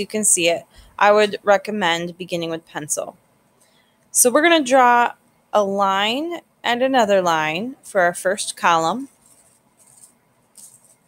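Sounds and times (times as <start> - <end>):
marker rustling on paper: 8.9 - 11.0.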